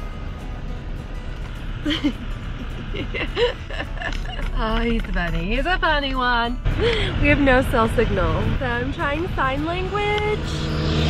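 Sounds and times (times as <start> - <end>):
van engine and road rumble: 0.0 - 11.0
woman laughing: 1.8 - 4.8.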